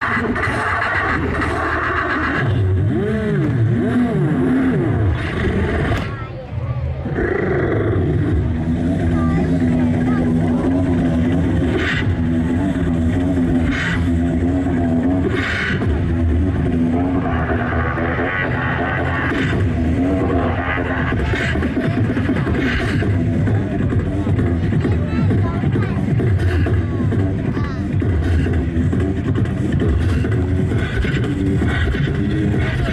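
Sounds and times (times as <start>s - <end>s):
beatboxing into a microphone: 0.0s - 6.3s, 7.1s - 32.9s
hummed bass tone: 0.0s - 32.9s.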